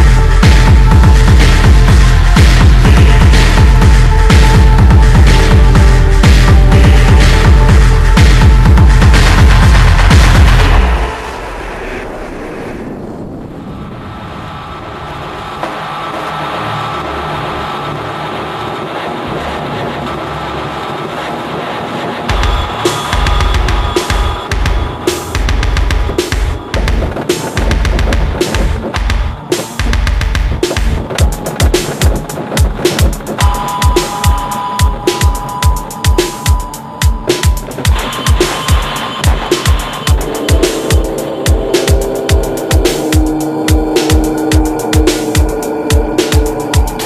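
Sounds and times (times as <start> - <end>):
deep kick drum: 0.0 - 11.0, 22.3 - 47.0
electronic beat: 0.0 - 11.2, 21.5 - 47.0
industrial drone: 0.0 - 47.0
sustained synth tone: 0.0 - 47.0
hi-hat clicks: 22.3 - 47.0
faint high held tone: 33.4 - 45.0.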